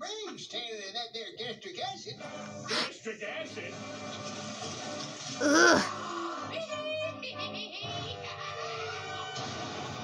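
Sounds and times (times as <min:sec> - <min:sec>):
animal-like monster growl: 0:05.4 - 0:05.9.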